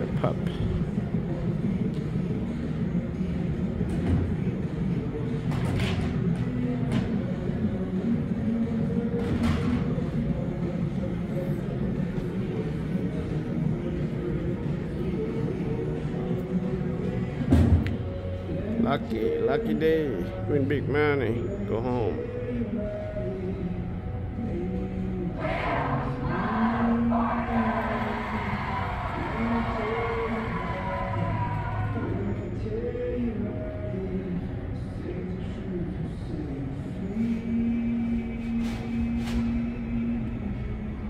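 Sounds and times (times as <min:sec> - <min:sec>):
murmur of voices: 0:00.0 - 0:41.0.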